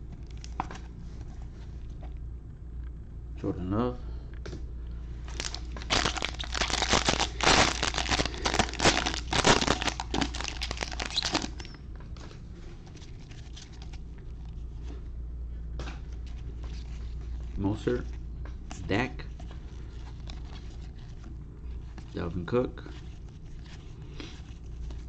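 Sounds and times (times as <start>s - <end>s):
card pack wrapper crinkling: 5.3s - 11.7s.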